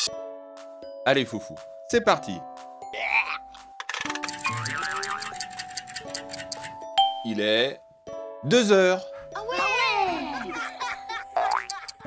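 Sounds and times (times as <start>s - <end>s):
light background music: 0.0s - 12.0s
rapid clock ticks: 3.9s - 6.9s.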